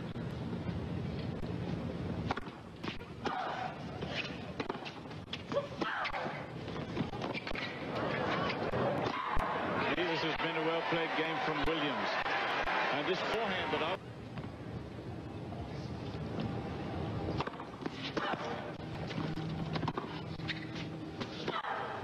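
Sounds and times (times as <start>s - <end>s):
crowd voices: 6.3s - 20.3s.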